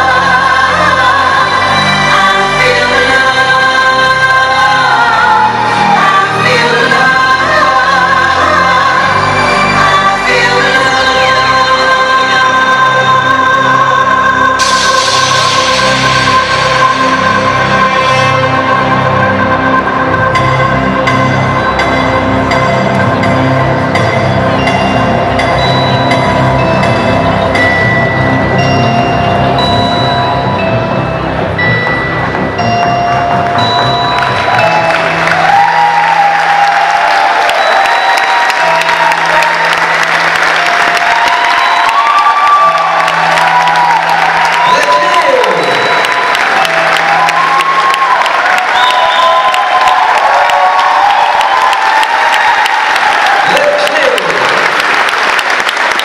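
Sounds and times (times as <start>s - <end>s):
runway music with bass line: 0.0s - 52.4s
audience applauding and cheering: 14.3s - 56.0s.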